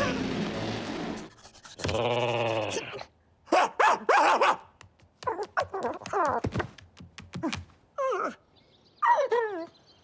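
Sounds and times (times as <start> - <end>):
cartoon dog barking: 3.5 - 6.4.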